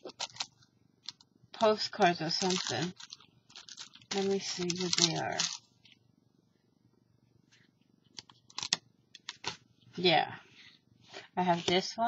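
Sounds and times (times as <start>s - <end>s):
plastic packaging being handled: 0.0s - 1.2s, 2.0s - 6.0s, 8.2s - 9.6s.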